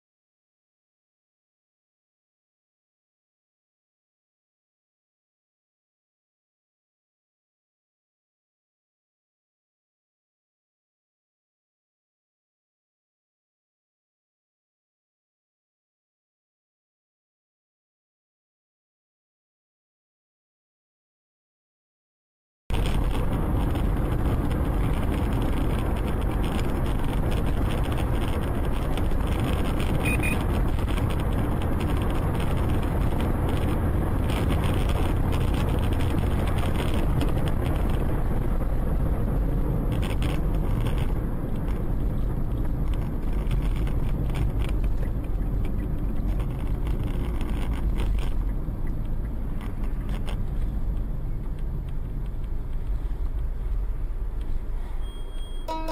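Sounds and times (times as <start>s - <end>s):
road and engine noise inside car: 22.7s - 55.9s.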